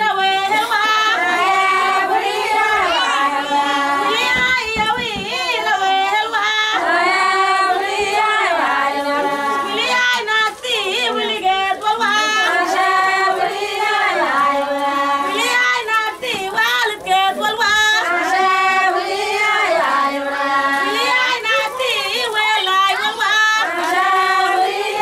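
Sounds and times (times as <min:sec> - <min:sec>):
women singing unaccompanied: 0:00.0 - 0:25.0.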